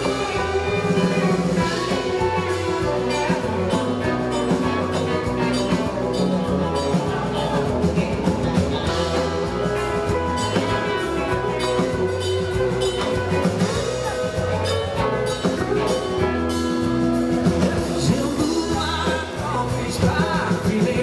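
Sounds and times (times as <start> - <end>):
pedal steel guitar: 0.0 - 20.2
bass guitar: 0.0 - 21.0
drum kit: 0.0 - 21.0
electric guitar: 0.0 - 21.0.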